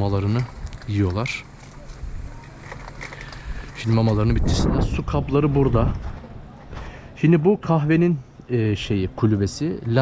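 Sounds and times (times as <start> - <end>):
dogs crunching dry food: 0.2 - 4.2.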